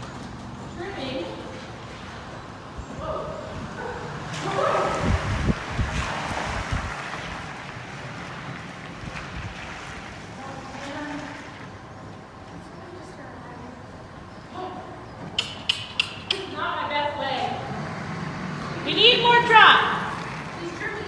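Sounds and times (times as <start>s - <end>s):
rushing noise with low thumps: 2.9s - 10.5s.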